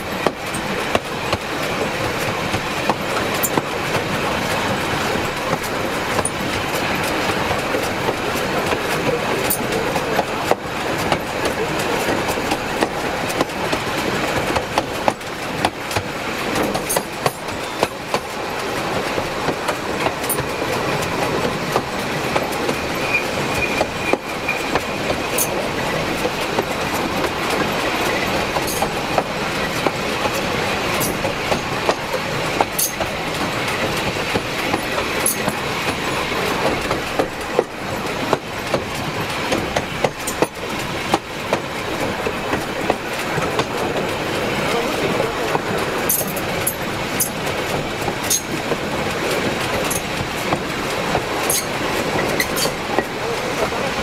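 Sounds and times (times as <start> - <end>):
railway wagon wheels rumbling: 0.0 - 54.0
wheels squealing: 22.8 - 25.6, 51.4 - 53.4.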